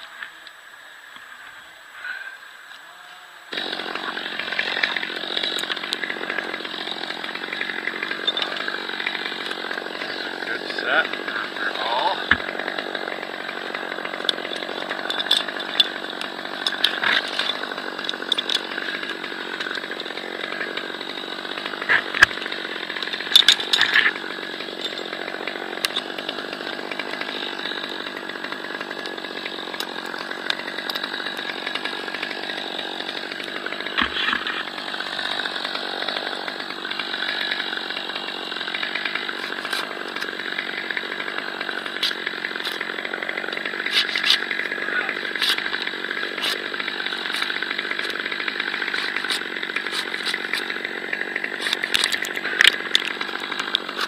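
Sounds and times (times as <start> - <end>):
chainsaw running: 3.5 - 54.0
clicks and knocks of climbing gear: 15.0 - 19.8, 23.0 - 24.2, 33.4 - 34.7, 39.3 - 40.3, 41.9 - 44.6, 45.4 - 50.8, 51.6 - 54.0.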